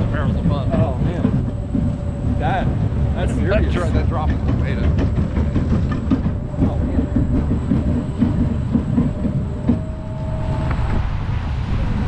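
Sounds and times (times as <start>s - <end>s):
faint whine: 0.0s - 12.0s
roller coaster rumble and clatter: 0.0s - 12.0s.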